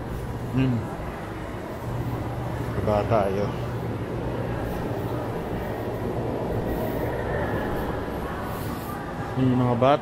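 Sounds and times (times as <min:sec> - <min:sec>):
low hum: 0:00.0 - 0:09.4
low rumbling background noise: 0:00.0 - 0:10.0.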